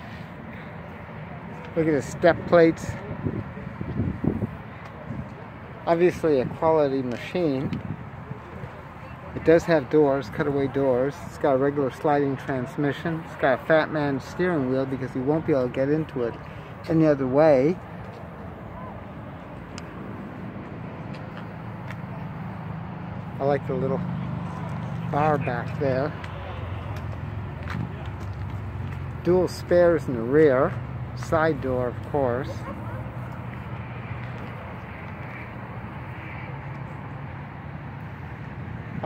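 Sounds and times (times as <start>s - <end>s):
outdoor background noise: 0.0s - 39.0s.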